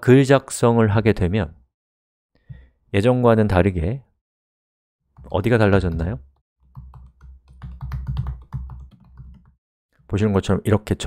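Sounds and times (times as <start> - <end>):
person speaking: 5.2 - 6.3
keyboard typing: 6.6 - 9.6.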